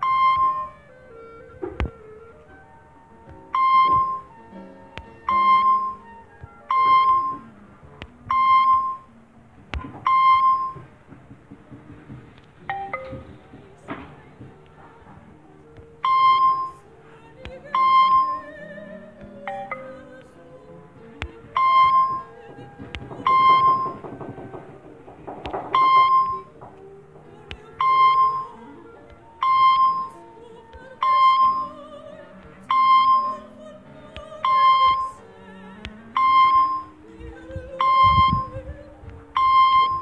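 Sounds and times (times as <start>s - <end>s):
short electronic beep: 0.0s - 0.7s, 3.5s - 4.3s, 5.2s - 6.0s, 6.7s - 7.4s, 8.3s - 9.1s, 10.0s - 10.8s, 12.7s - 13.2s, 16.0s - 16.8s, 25.8s - 26.5s, 37.8s - 38.5s, 39.4s - 40.0s
quiet background music: 0.0s - 40.0s.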